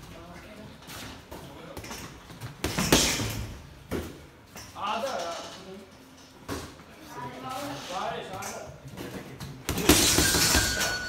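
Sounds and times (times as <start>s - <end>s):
punches thudding on punching bag: 9.7s - 11.0s.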